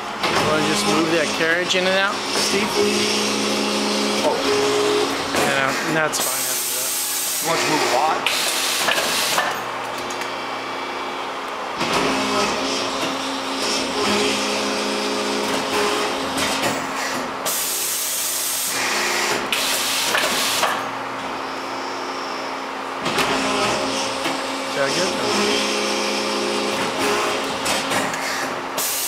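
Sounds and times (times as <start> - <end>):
hydraulic machine hum: 0.0 - 29.0.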